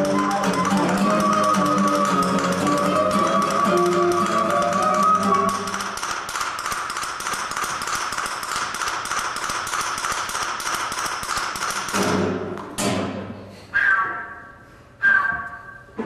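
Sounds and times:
rapid light tapping: 0.0s - 12.0s.

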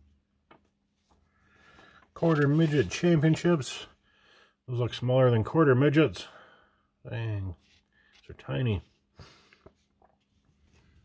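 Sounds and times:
paper rustling: 0.5s - 3.5s
magazine page clicks: 2.2s - 3.5s.

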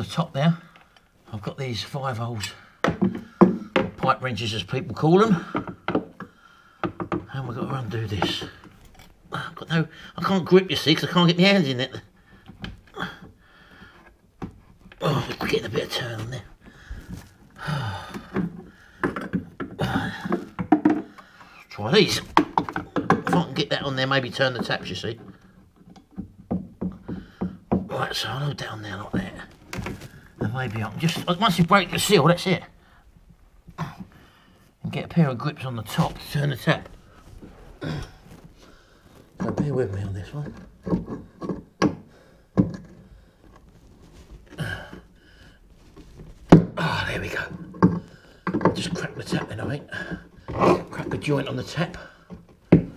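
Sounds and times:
faint background noise: 0.0s - 52.9s.

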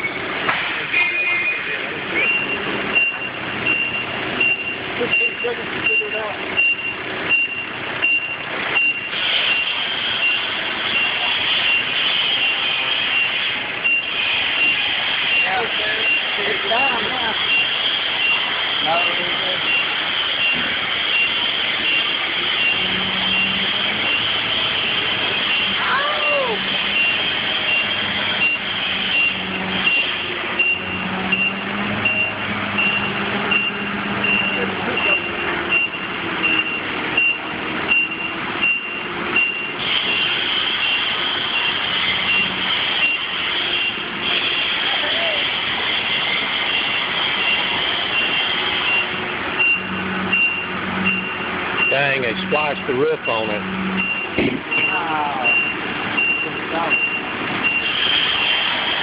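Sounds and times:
electronic warning beeper: 0.9s - 45.3s, 46.1s - 58.6s.

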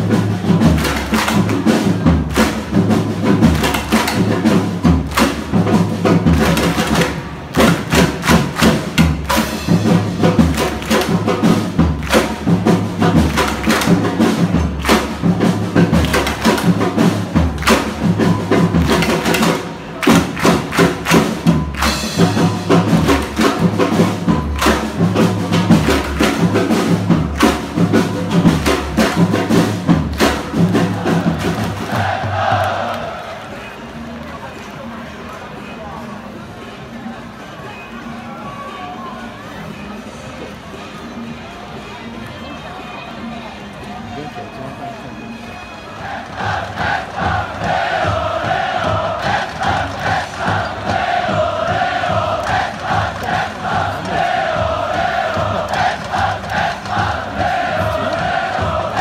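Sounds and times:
drums beaten in fast rhythm: 0.0s - 32.9s, 46.2s - 59.0s.

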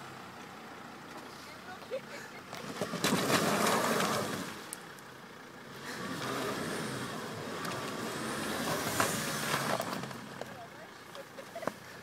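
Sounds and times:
diesel car engine revving hard: 2.6s - 4.7s, 5.6s - 10.4s.

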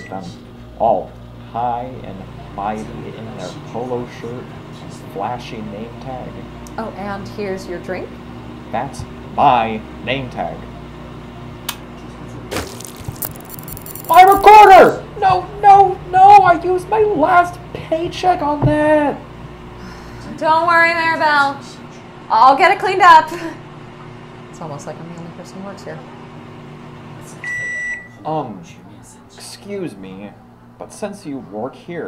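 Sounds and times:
microwave oven beeping: 0.0s - 0.4s, 27.3s - 28.4s
steady low hum: 0.0s - 32.0s
drink spilling and splashing: 12.5s - 14.5s.

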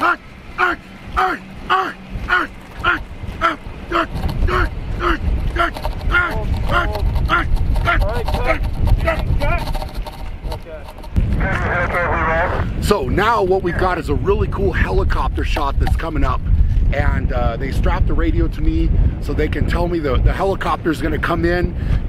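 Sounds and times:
person speaking: 0.0s - 9.8s
steady low rumble: 0.0s - 22.0s.

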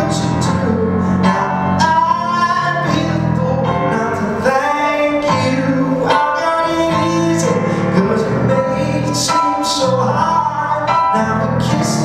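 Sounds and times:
keyboard chords: 0.0s - 12.0s
man singing: 0.0s - 12.0s.

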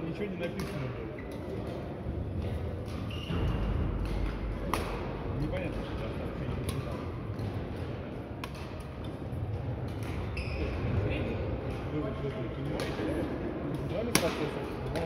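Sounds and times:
racket hitting shuttlecock: 0.5s - 1.8s, 2.4s - 5.2s, 6.5s - 9.1s, 13.7s - 15.0s.

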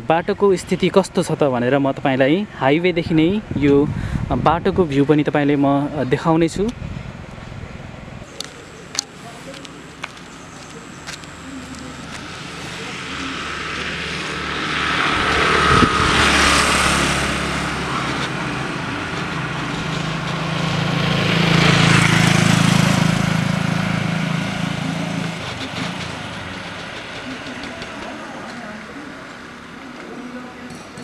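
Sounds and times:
tyre and road noise: 2.9s - 31.0s
vehicle engine hum: 6.6s - 31.0s.

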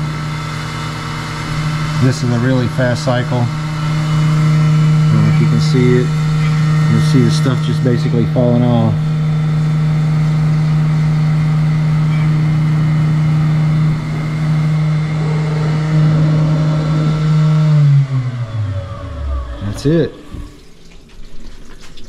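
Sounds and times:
mill spindle running and whining: 0.0s - 20.8s
end mill cutting nylon: 0.0s - 20.9s.

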